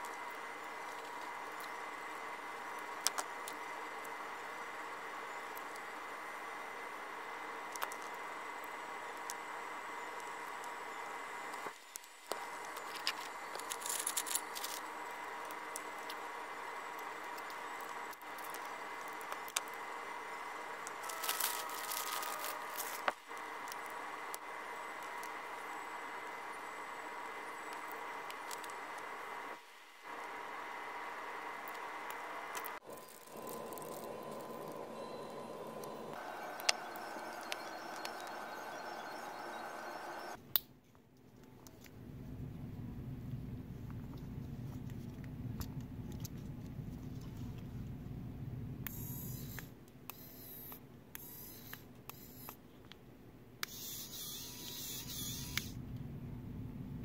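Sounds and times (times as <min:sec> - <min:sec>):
electrical hum: 0:00.0 - 0:57.0.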